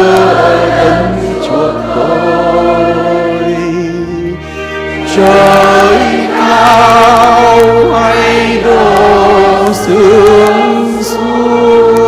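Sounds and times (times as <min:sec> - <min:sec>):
congregation singing a hymn: 0:00.0 - 0:12.0
electronic organ chords: 0:00.0 - 0:12.0.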